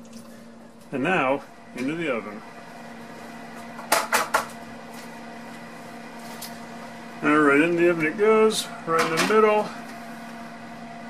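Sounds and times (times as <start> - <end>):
oven hum: 0.0 - 11.0.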